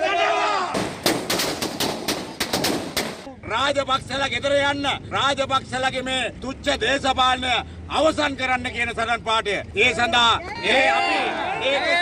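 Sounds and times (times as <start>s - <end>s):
man shouting: 0.0s - 0.8s, 9.8s - 12.0s
firecrackers banging: 0.8s - 3.3s.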